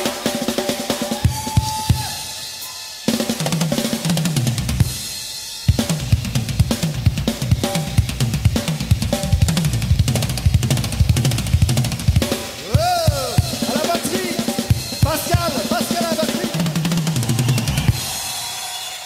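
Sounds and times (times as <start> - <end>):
drum kit playing a driving rhythm: 0.0 - 18.5.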